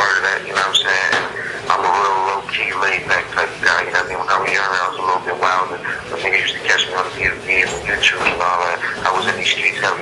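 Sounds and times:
man talking over phone line: 0:00.0 - 0:10.0.

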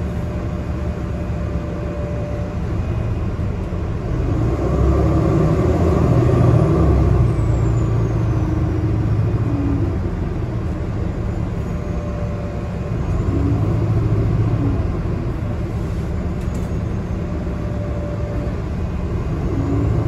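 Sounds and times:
bus engine and road drone: 0:00.0 - 0:20.0.

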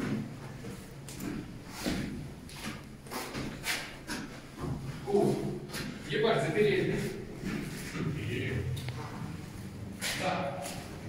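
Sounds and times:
person speaking: 0:05.0 - 0:07.3.

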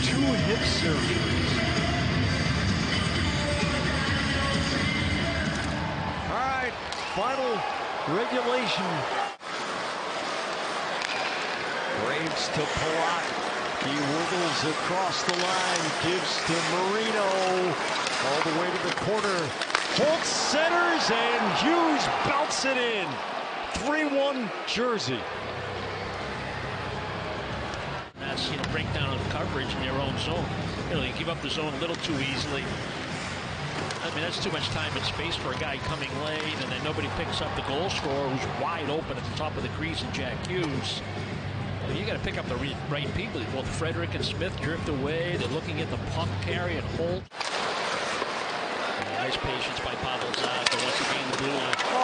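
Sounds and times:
music over public address: 0:00.0 - 0:06.3
murmur of arena crowd: 0:00.0 - 0:52.0
commentator speaking: 0:12.1 - 0:23.2.

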